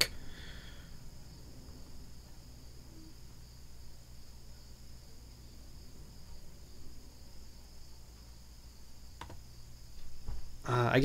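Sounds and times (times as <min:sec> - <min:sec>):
high-pitched whine: 0:00.0 - 0:11.0
low hum: 0:00.0 - 0:11.0.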